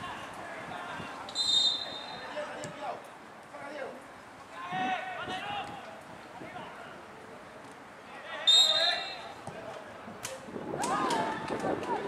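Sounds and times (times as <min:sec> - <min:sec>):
referee's whistle blast: 0:01.3 - 0:02.3, 0:08.5 - 0:09.3.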